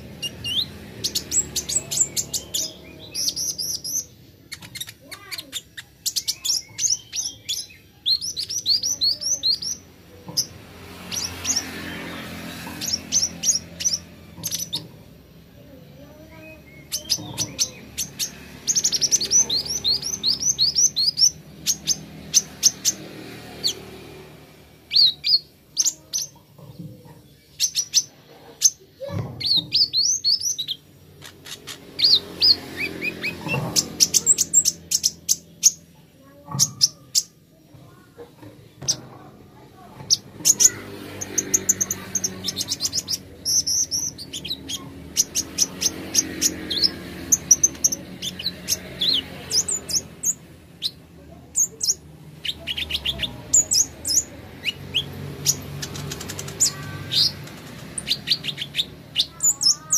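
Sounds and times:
bird sharp ticking calls: 0.0 - 15.1, 16.0 - 24.1, 27.2 - 59.9.

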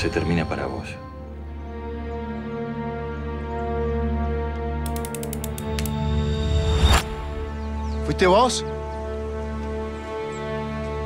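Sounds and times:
revolver hammer and cylinder clicking: 4.9 - 6.0.

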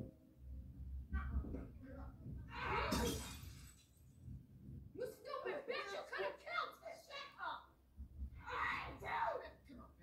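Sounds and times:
film soundtrack from television: 0.0 - 10.0.

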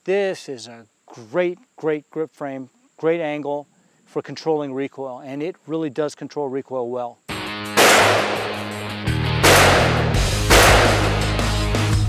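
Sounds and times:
music with steady bass beat: 7.3 - 12.0
revolver gunshots: 7.8 - 11.4.

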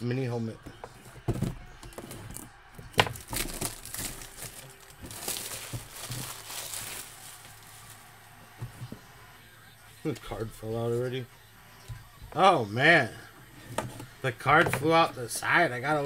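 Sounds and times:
plastic wrap crinkling and tearing: 3.0 - 8.3.

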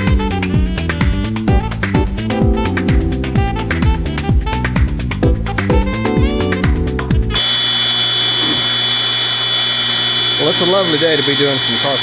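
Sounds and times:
background music: 0.0 - 7.4
table saw running: 7.3 - 12.0.

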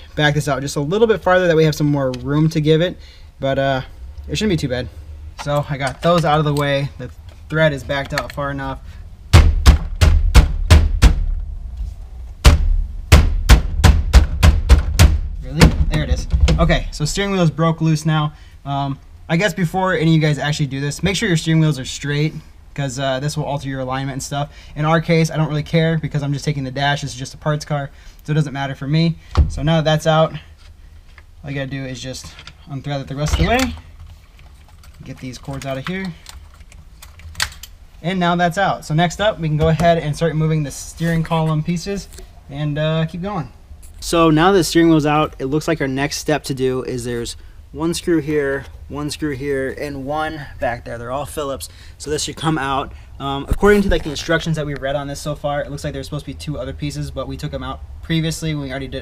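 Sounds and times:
palms pounding steering wheel: 9.3 - 11.5, 12.4 - 16.9.

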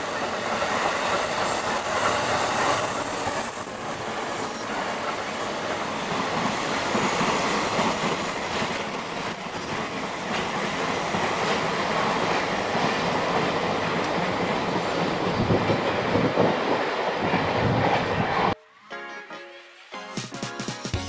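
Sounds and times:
train wheels rumbling on rail: 0.0 - 18.6.

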